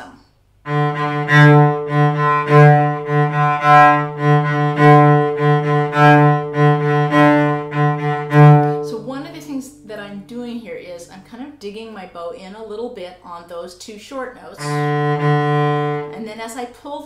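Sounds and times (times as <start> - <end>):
cello bowing low note: 0.7 - 9.8, 14.6 - 16.2.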